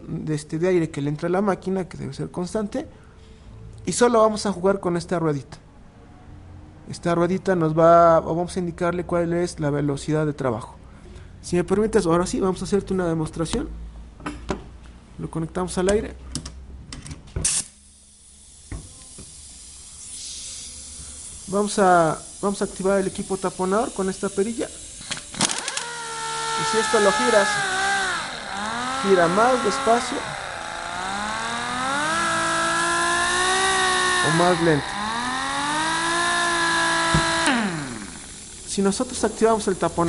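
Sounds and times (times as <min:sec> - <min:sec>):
pneumatic air motor whining: 0:17.4 - 0:40.0
sharp burst of air: 0:17.5 - 0:25.3
steady air hiss: 0:17.6 - 0:25.2, 0:37.9 - 0:40.0.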